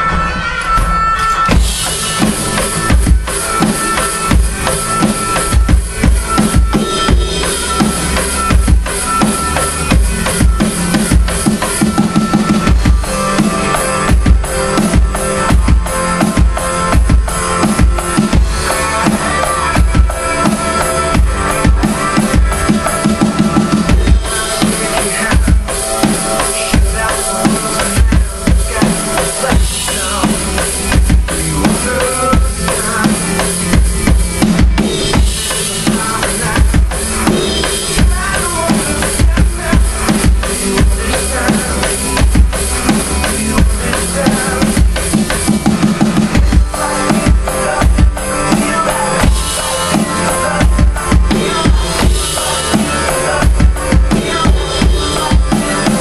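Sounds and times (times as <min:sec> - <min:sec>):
electronic drum kit playing: 0:00.0 - 0:56.0
recorded rock song: 0:00.0 - 0:56.0.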